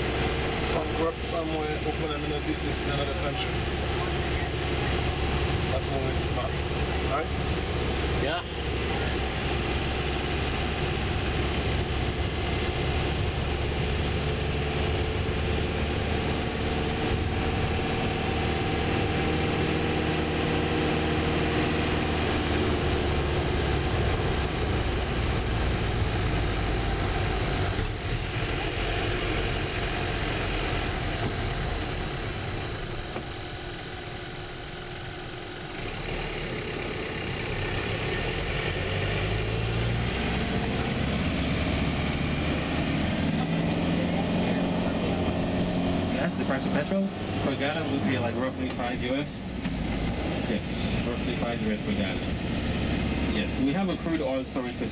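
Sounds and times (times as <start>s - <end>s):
bus engine running: 0.0s - 54.9s
road noise: 0.0s - 54.9s.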